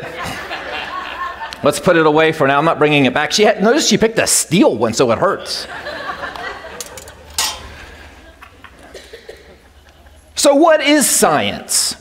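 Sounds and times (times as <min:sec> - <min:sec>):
metal stick clanking down: 0:06.7 - 0:08.0.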